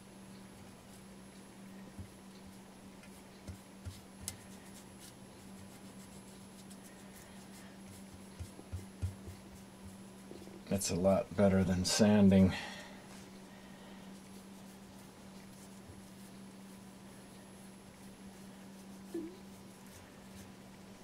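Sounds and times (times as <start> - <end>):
steady low hum: 0.0 - 21.0
paper towel wiping plaster: 3.1 - 10.0, 14.1 - 16.9, 17.9 - 21.0.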